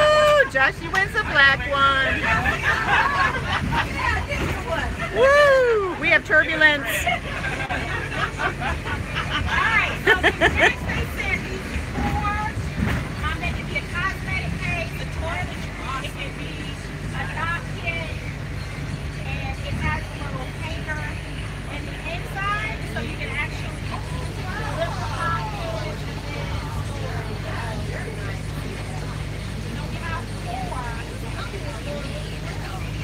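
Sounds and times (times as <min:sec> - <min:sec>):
bus engine drone: 0:00.0 - 0:33.0
overlapping voices chattering: 0:00.0 - 0:33.0.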